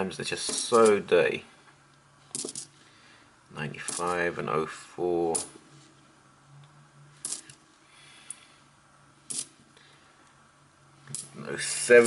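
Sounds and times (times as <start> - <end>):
faint steady hum: 0.0 - 12.0
coins clicking together: 2.3 - 2.7, 7.2 - 7.6, 9.3 - 9.5.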